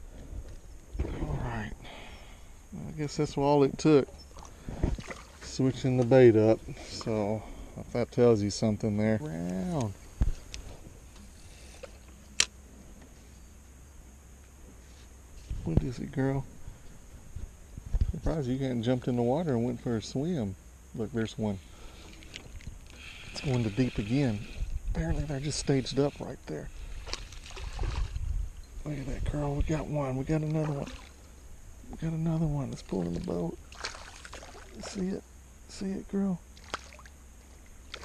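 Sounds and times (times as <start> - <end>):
faint low hum: 0.0 - 38.0
microphone handling noise: 4.6 - 5.1, 10.1 - 11.0, 15.4 - 18.2
fishing reel ticking: 22.2 - 26.3
wind rumble: 26.7 - 29.9.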